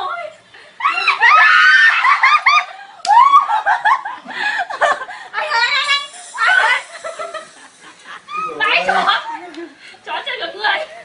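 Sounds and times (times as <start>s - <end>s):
woman shrieking with laughter: 0.8s - 4.7s, 6.4s - 9.6s.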